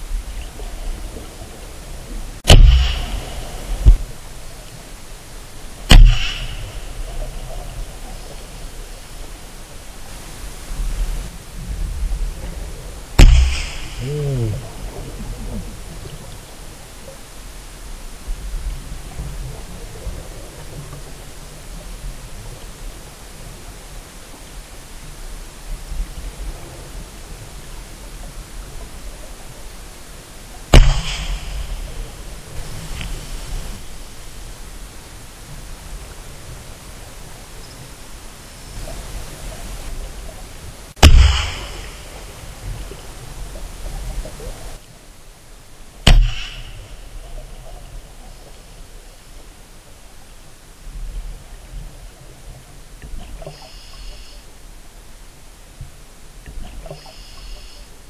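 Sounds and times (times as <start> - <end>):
steady rushing noise: 1.6 - 16.0, 30.7 - 36.2, 40.7 - 44.8
sharp knocks: 2.5 - 4.0, 5.9 - 6.7, 13.2 - 14.1, 46.1 - 46.9.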